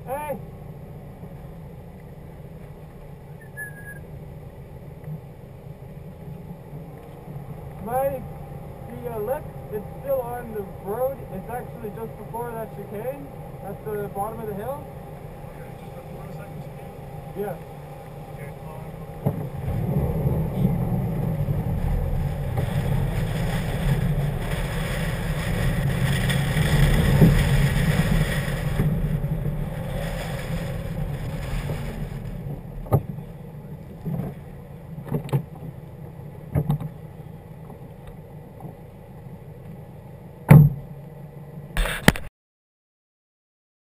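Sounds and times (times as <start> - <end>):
car engine driving on gravel: 0.0 - 42.2.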